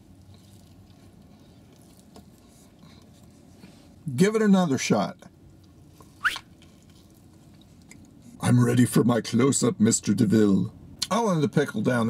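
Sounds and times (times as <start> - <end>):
quiet chewing: 0.0 - 4.0, 5.3 - 8.4.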